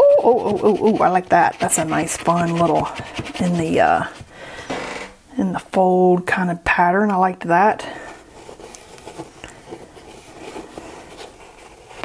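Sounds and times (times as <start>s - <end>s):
pencil scribbling on paper: 0.2s - 4.3s.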